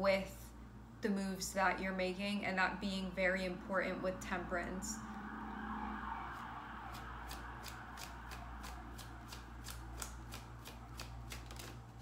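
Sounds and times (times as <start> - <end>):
cards shuffling: 7.3 - 12.0.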